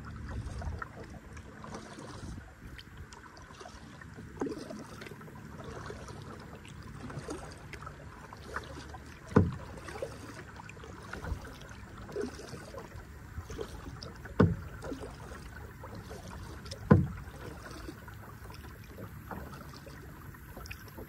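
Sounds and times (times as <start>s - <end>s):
low plunks in water: 0.0s - 21.0s
small water splashes: 0.0s - 21.0s
water lapping around kayak: 0.0s - 21.0s.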